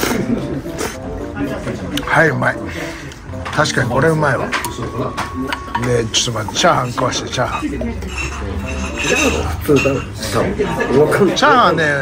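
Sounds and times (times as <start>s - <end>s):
spoon scraping ceramic plate: 4.5s - 10.4s.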